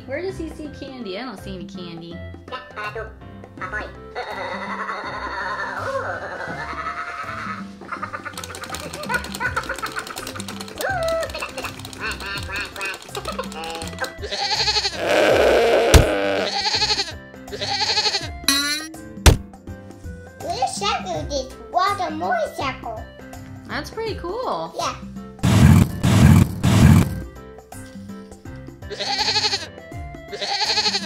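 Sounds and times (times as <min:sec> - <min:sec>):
upbeat background music: 0:00.0 - 0:31.0
toy chattering in gibberish: 0:08.3 - 0:16.5.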